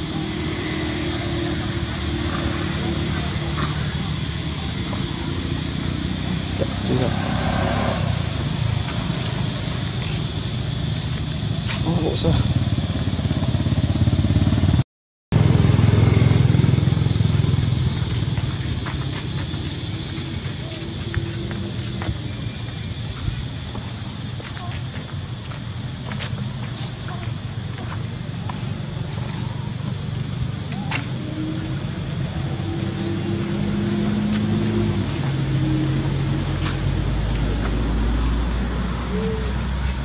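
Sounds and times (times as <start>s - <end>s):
indistinct voices: 0.0s - 12.8s, 15.6s - 40.0s
heavy low rumble: 0.0s - 14.8s, 15.4s - 40.0s.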